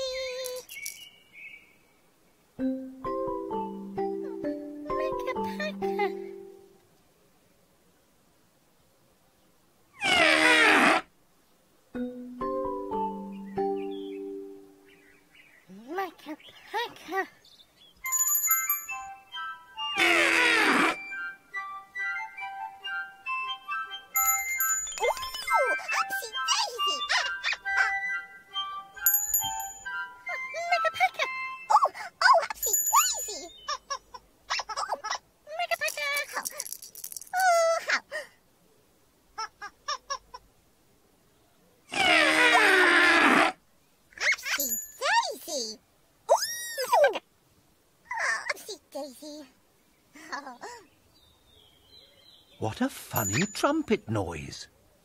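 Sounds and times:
cartoon character vocalisations: 0:00.0 - 0:00.7, 0:04.1 - 0:06.4, 0:20.0 - 0:21.0, 0:25.0 - 0:28.1, 0:30.3 - 0:36.6, 0:37.3 - 0:38.3, 0:41.9 - 0:43.1, 0:44.2 - 0:47.2, 0:48.1 - 0:49.6, 0:50.2 - 0:50.8
tinkly music: 0:02.6 - 0:06.8, 0:12.0 - 0:14.9, 0:18.0 - 0:20.0, 0:21.0 - 0:33.7, 0:44.6 - 0:45.1, 0:53.2 - 0:54.0.

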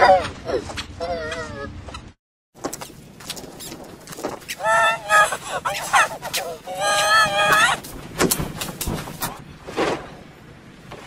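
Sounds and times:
warbling pitch-shifted voice: 0:04.5 - 0:07.8.

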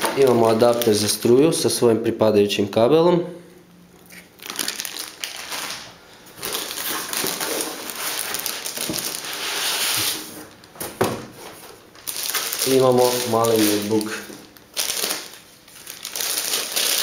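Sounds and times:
plastic packaging crinkling: 0:00.0 - 0:01.3, 0:04.0 - 0:10.8, 0:11.4 - 0:17.0.

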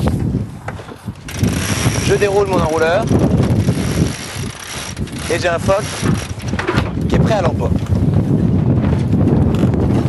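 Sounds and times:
sail furler lines running out: 0:00.0 - 0:10.0
wind rumbling on microphone: 0:00.0 - 0:10.0.

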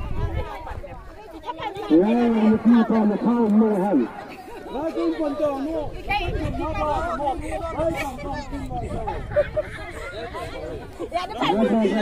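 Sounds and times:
people talking and chattering: 0:00.0 - 0:12.0.

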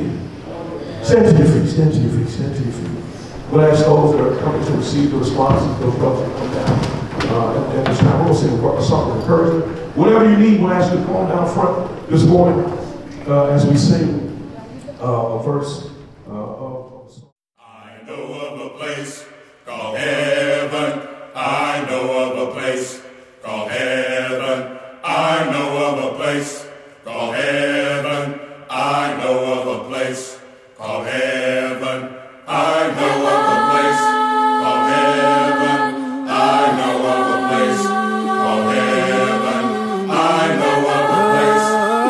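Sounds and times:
congregation singing a hymn: 0:00.0 - 0:14.5, 0:17.6 - 0:42.0.

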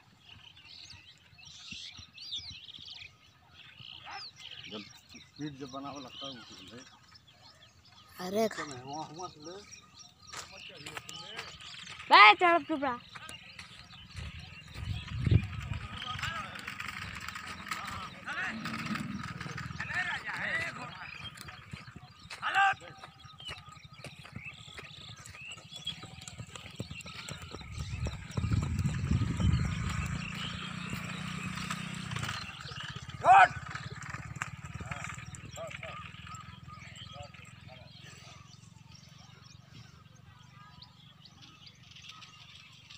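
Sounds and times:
horse galloping hoofbeats: 0:00.0 - 0:04.2, 0:09.6 - 0:38.8
voices calling outdoors: 0:00.0 - 0:42.9.

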